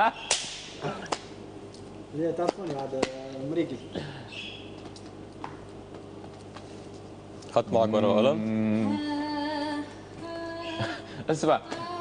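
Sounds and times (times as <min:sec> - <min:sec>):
hand slap: 0:00.3 - 0:01.4.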